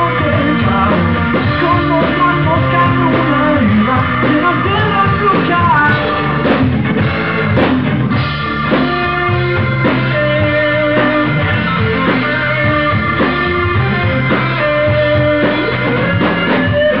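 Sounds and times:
bass guitar: 0:00.0 - 0:17.0
drum kit: 0:00.0 - 0:17.0
electric guitar: 0:00.0 - 0:17.0.

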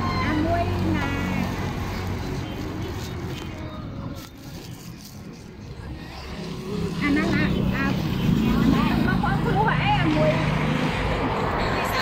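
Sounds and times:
people talking: 0:00.0 - 0:01.7, 0:06.8 - 0:10.6.

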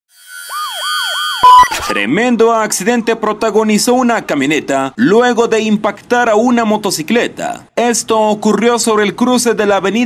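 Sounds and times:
yelping siren sound effect: 0:00.1 - 0:02.0.

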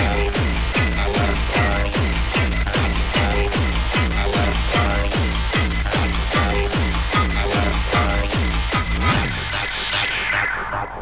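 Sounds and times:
fast kick drum: 0:00.0 - 0:09.4
electronic synth sounds: 0:00.0 - 0:11.0.

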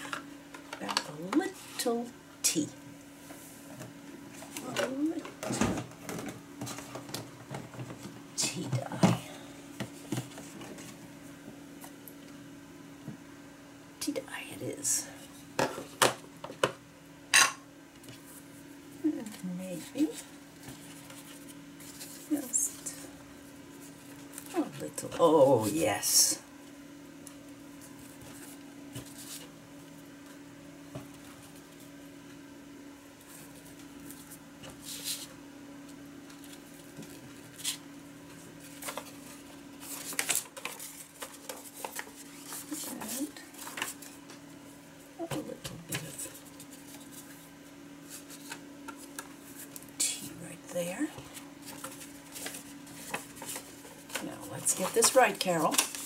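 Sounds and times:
steady low hum: 0:00.0 - 0:56.0
paper rustling and crinkling: 0:19.1 - 0:23.1, 0:23.7 - 0:25.3, 0:27.8 - 0:29.6, 0:33.2 - 0:44.4, 0:45.9 - 0:49.9, 0:51.3 - 0:56.0.

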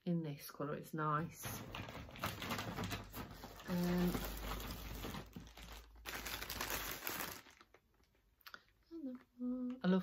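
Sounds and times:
rustling and crinkling: 0:01.3 - 0:09.3.

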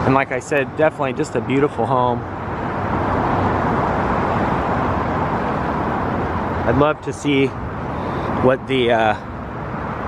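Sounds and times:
car traffic rushing past: 0:00.0 - 0:10.0.

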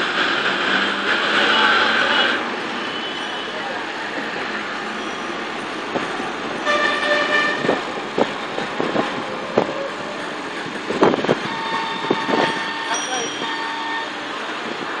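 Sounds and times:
road and engine noise: 0:00.0 - 0:15.0
vehicle horns honking: 0:01.3 - 0:03.8, 0:06.6 - 0:07.8, 0:11.3 - 0:14.5.

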